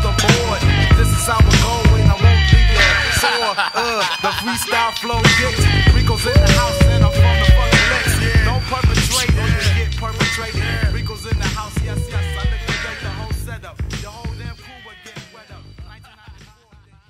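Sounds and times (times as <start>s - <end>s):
hip-hop music with heavy bass: 0.0s - 17.0s.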